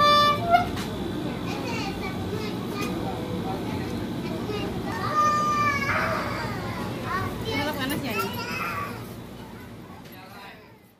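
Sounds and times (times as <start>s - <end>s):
children calling and chattering: 0.0s - 10.9s.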